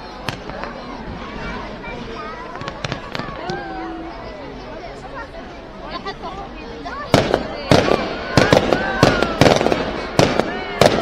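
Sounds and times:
fireworks bangs and crackles: 0:00.1 - 0:01.6, 0:02.4 - 0:03.8, 0:07.0 - 0:11.0.

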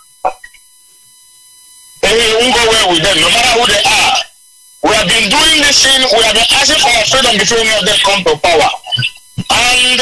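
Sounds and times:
electronic tone on telephone line: 0:00.0 - 0:10.0.

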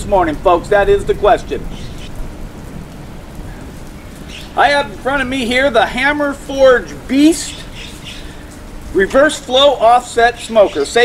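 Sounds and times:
low rumble of thunder: 0:00.0 - 0:09.3
steady rain: 0:00.0 - 0:11.0.

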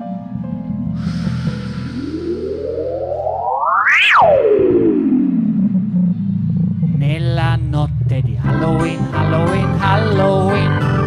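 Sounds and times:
synthesizer pitch sweep: 0:00.0 - 0:11.0
band backing music: 0:08.4 - 0:11.0.

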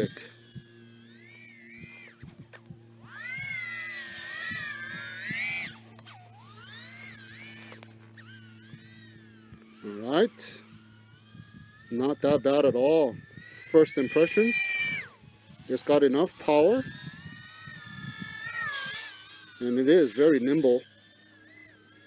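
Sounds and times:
low electrical hum: 0:00.0 - 0:22.0
quadcopter motors whining: 0:00.0 - 0:22.0.

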